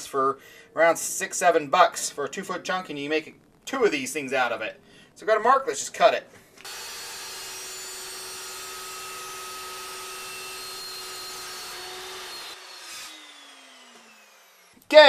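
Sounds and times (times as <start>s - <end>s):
chop saw motor whining: 6.6s - 14.8s.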